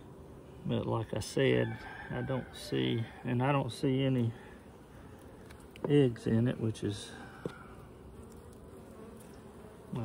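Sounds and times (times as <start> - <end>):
honeybees buzzing: 0.0 - 10.0.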